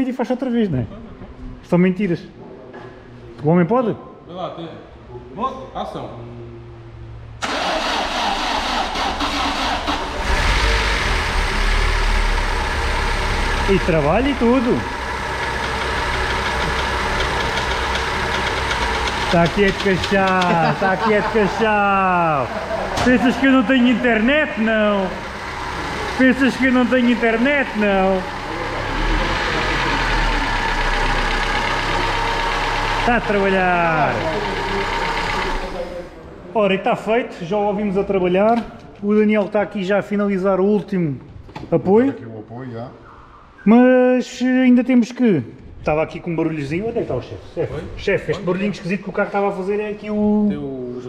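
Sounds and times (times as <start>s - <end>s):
car engine starting and running: 7.4s - 36.1s.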